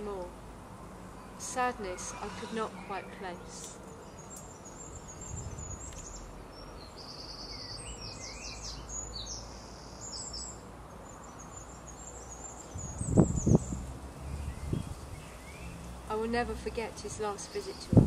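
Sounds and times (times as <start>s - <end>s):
small birds chirping: 1.2s - 18.0s.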